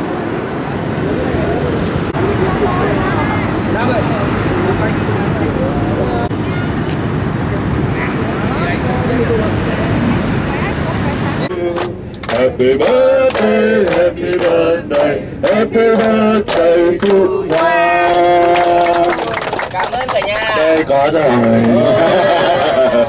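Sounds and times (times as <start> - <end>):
city traffic noise: 0.0 - 23.0
faint voices talking: 0.6 - 11.7.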